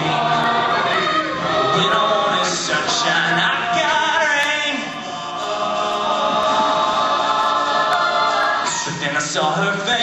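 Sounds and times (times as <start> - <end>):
a cappella group singing: 0.0 - 10.0.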